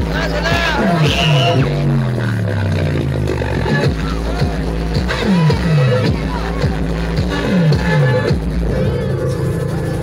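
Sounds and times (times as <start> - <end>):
dance music over sound system: 0.0 - 10.0
deep sliding bass notes: 0.0 - 10.0.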